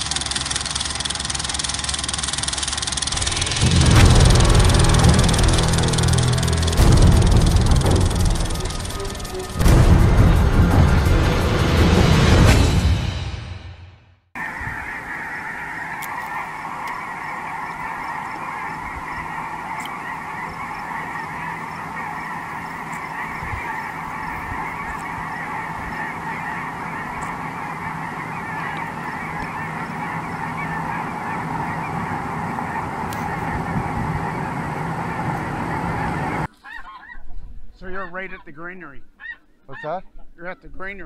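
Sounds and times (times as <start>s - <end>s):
geese honking: 2.4s - 11.4s, 14.4s - 37.2s, 37.8s - 40.6s.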